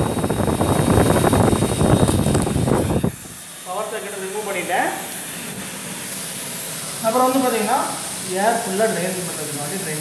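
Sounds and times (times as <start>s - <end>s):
compressor pump knocking: 0.0s - 3.4s
air hissing: 0.0s - 10.0s.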